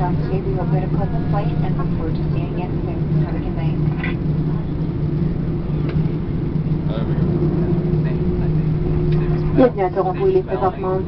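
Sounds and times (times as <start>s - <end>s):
aircraft engines droning at idle: 0.0s - 11.0s
low cabin hum: 0.0s - 11.0s.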